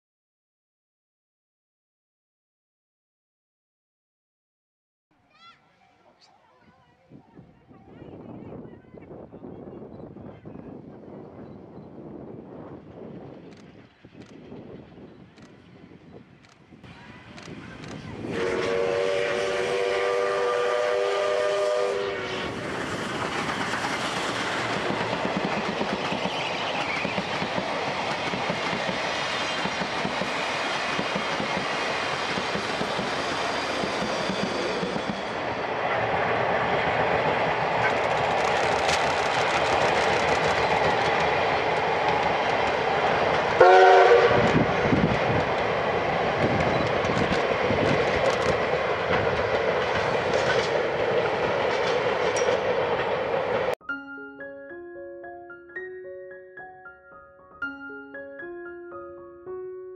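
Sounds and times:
steam train rumbling past: 0:12.0 - 0:53.8
steam whistle blast: 0:18.2 - 0:22.6, 0:43.6 - 0:44.6.

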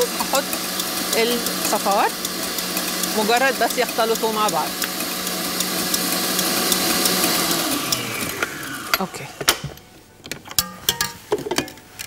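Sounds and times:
electric stand mixer whisking: 0:00.0 - 0:09.4.

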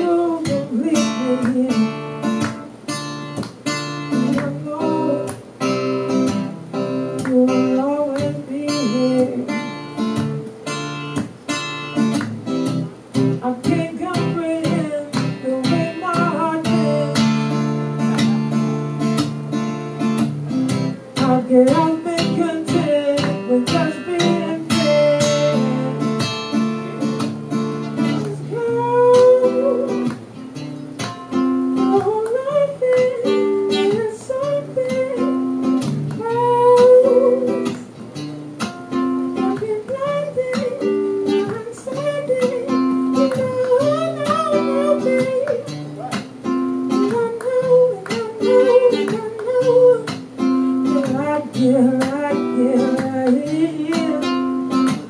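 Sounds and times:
man singing: 0:00.0 - 0:02.1, 0:04.2 - 0:05.3, 0:07.3 - 0:09.7, 0:13.4 - 0:17.6, 0:21.2 - 0:26.2, 0:28.0 - 0:30.1, 0:39.4 - 0:45.7, 0:50.9 - 0:54.5
acoustic guitar strumming: 0:00.0 - 0:55.0.

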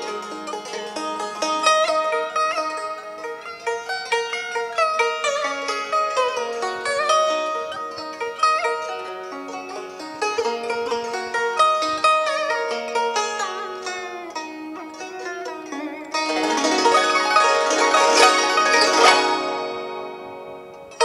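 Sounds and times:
plucked zither melody: 0:00.0 - 0:21.0.

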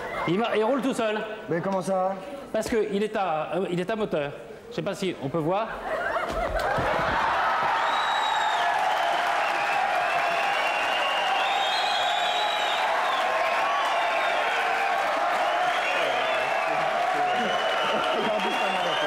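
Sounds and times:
audience laughing and applauding: 0:05.9 - 0:19.0.

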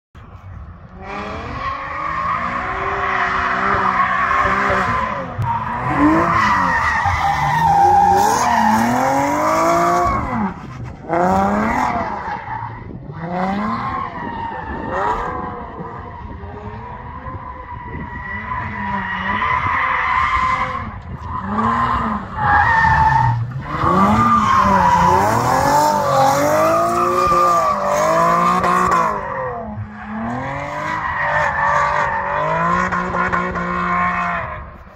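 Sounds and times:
car engine revving: 0:00.9 - 0:14.0, 0:20.3 - 0:34.6.

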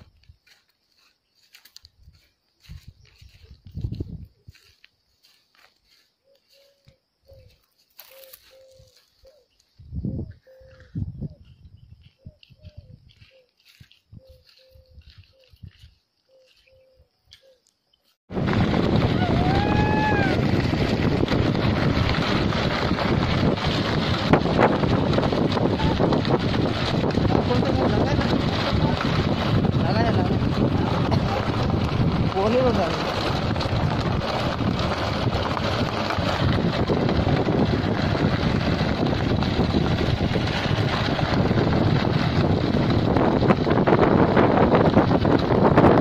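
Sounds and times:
wind on microphone: 0:01.4 - 0:06.6, 0:08.2 - 0:16.9, 0:18.3 - 0:46.0
loud low rumbles: 0:18.3 - 0:46.0.

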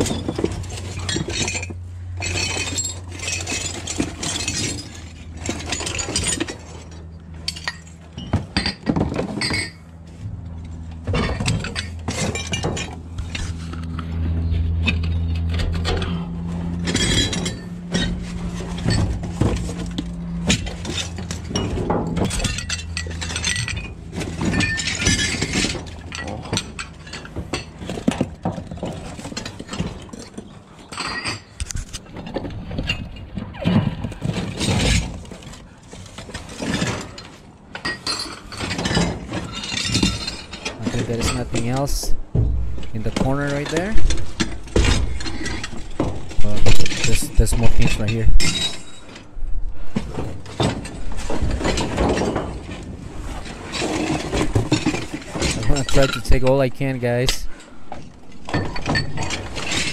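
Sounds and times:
steady low hum: 0:00.0 - 0:30.3, 0:34.0 - 0:59.9
crockery clattering in metal dumpster: 0:00.0 - 0:59.9.

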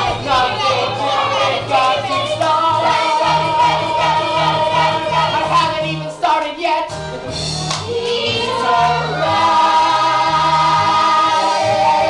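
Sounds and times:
children singing together: 0:00.0 - 0:05.8, 0:07.9 - 0:12.0
low musical accompaniment: 0:00.0 - 0:12.0.

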